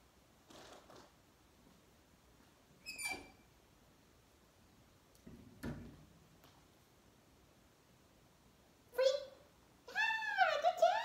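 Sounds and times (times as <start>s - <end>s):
excited high-pitched praise: 9.0s - 11.0s.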